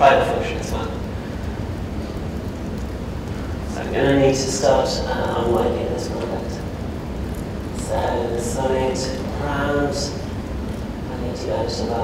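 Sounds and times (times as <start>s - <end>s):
faint hiss: 0.0s - 12.0s
low hum of large hall: 0.0s - 12.0s.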